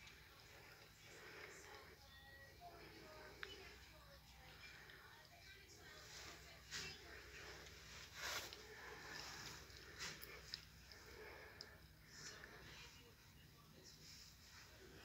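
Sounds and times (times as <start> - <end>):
soft breaths: 0.0 - 15.0
steady low hum: 0.0 - 15.0.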